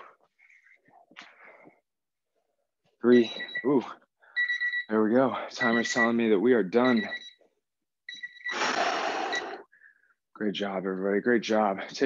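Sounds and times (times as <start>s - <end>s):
electronic timer beeping: 3.1s - 5.0s, 5.6s - 6.2s, 6.8s - 7.4s, 8.1s - 8.6s, 9.2s - 9.7s.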